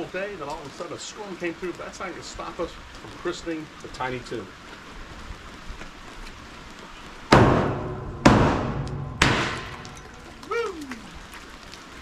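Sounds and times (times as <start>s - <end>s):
bottle striking boat hull: 7.3s - 10.3s.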